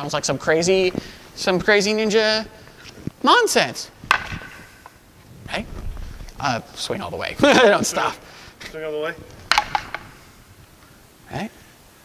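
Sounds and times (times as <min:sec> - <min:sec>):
wooden swords clacking: 0:04.1 - 0:05.0, 0:09.4 - 0:10.2.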